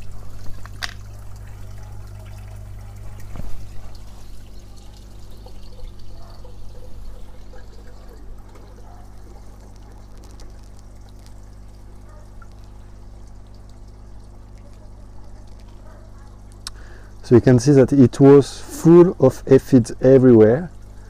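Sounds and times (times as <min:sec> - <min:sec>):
water dripping off leaves: 0:00.0 - 0:17.2
steady low hum: 0:00.0 - 0:20.0.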